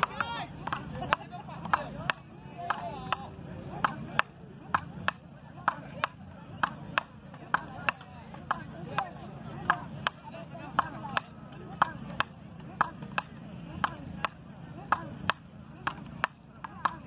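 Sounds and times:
wooden paddles hitting ball: 0.0 - 17.0.

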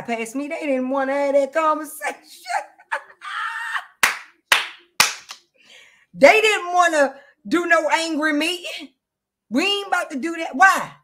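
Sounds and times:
woman laughing: 1.9 - 4.0
woman clapping hands: 4.0 - 5.4.

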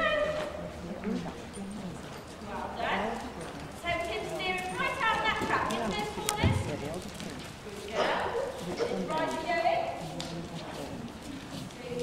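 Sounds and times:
faint voices murmuring: 0.0 - 12.0
hooves clip-clopping: 0.0 - 12.0.

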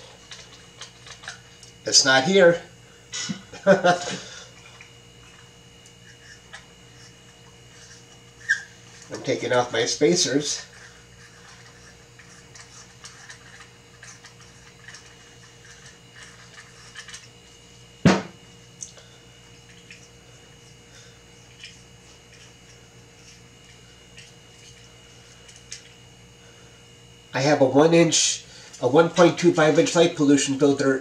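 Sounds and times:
faint hum: 0.0 - 31.0
part knocking on table: 18.0 - 18.4.

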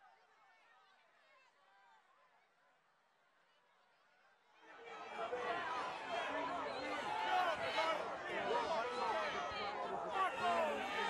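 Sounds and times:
large crowd yelling: 5.3 - 11.0.

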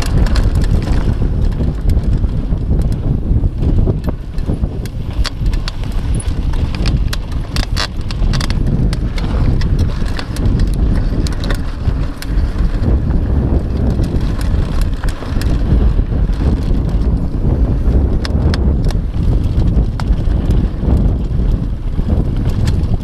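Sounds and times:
bike clacking and rattling: 0.0 - 23.0
wind and tyres rumbling on dirt: 0.0 - 23.0.

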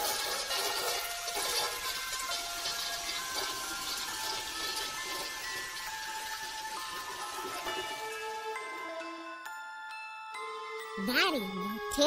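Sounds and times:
toilet flushing: 0.0 - 9.0
light background music: 0.0 - 12.0.

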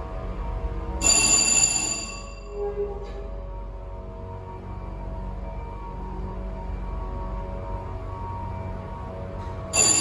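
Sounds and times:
elevator chime ding: 1.0 - 3.2, 9.7 - 10.0.

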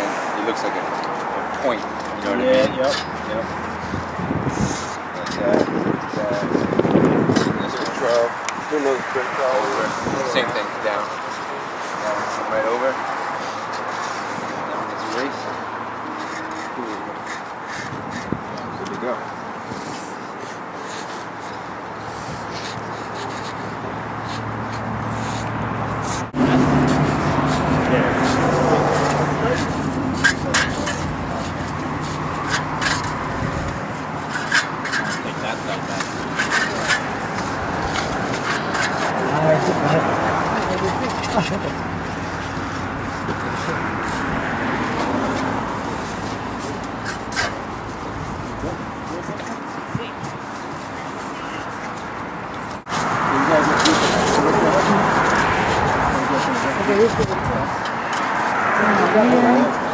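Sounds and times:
trowels scraping wet concrete: 0.0 - 59.9
people chattering: 26.3 - 59.9.

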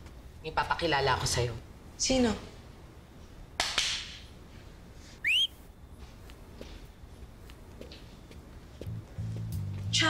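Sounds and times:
person whistling: 5.2 - 5.5.

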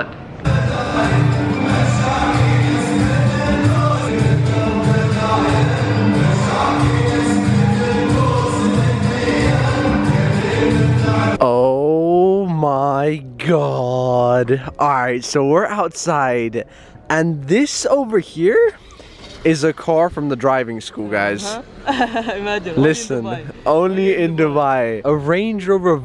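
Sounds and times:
men's chorus chanting: 0.5 - 11.4.

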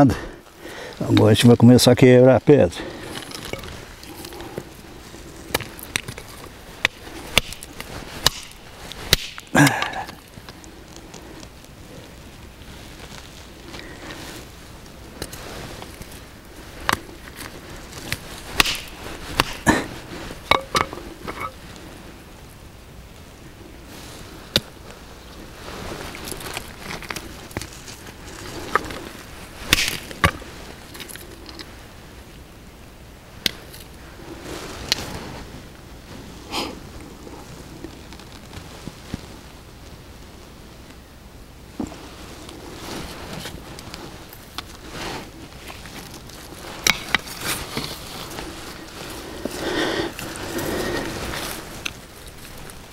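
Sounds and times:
stones knocking together: 5.5 - 10.6, 16.8 - 21.5, 29.7 - 30.4
sledgehammer breaking rocks: 8.2 - 9.9, 18.6 - 19.7, 29.7 - 30.4.

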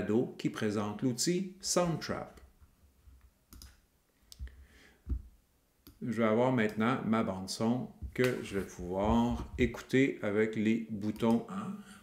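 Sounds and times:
computer mouse clicks: 3.5 - 4.5.

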